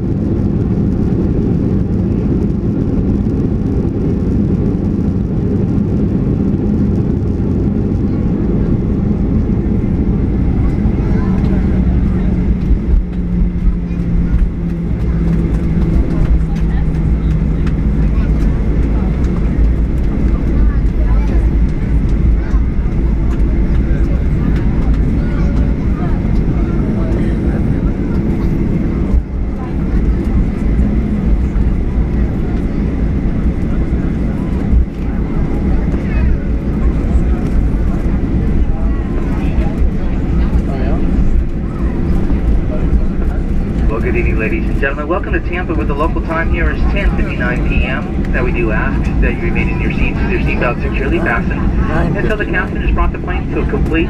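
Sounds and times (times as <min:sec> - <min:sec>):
engine and airframe rumble: 0:00.0 - 0:54.0
low engine tone: 0:00.0 - 0:54.0.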